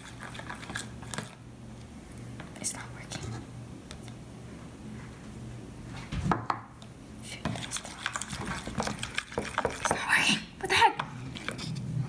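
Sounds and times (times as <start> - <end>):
steady low hum: 0.0 - 12.0
metal spoon scraping plastic bowl: 7.5 - 10.1, 11.3 - 11.8.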